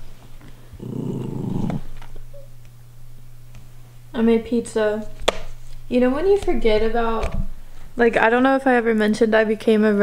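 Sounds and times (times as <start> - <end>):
small dog growling: 0.7 - 2.0.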